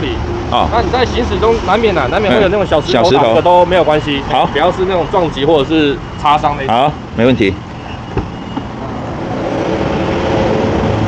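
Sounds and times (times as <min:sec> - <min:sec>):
vehicle passing by: 0:08.8 - 0:11.0.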